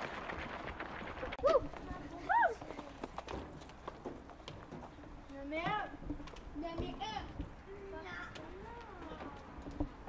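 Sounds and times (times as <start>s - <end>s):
running footsteps on gravel: 0.0s - 7.6s.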